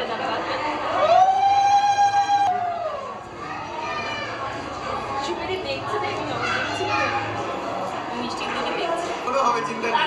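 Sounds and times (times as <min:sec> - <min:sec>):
children's voices: 0:03.2 - 0:08.2.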